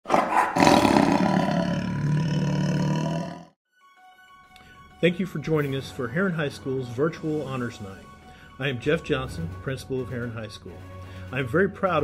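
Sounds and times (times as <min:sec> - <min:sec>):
big cat roar: 0:00.1 - 0:03.5.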